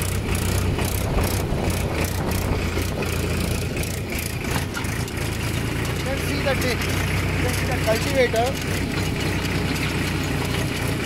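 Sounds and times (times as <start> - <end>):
tractor diesel engine running: 0.0 - 11.0.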